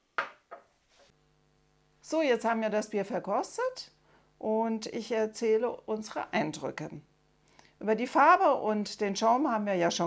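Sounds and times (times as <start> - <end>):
faint steady hum: 0.0 - 10.0
beer glass knocking on glass table: 0.2 - 0.7.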